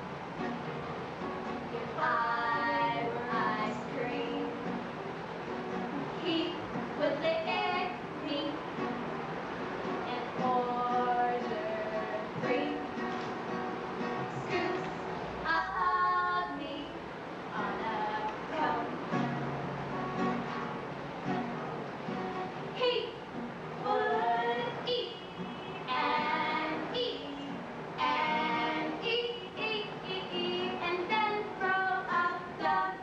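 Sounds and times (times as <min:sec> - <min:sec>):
strummed acoustic guitar: 0:00.0 - 0:33.0
two women singing: 0:01.8 - 0:04.7, 0:06.2 - 0:08.6, 0:10.1 - 0:13.1, 0:14.4 - 0:19.0, 0:23.8 - 0:25.2, 0:25.8 - 0:33.0.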